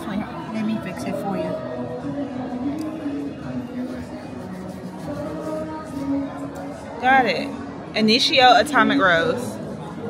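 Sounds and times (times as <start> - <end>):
people talking indistinctly: 0.0 - 10.0.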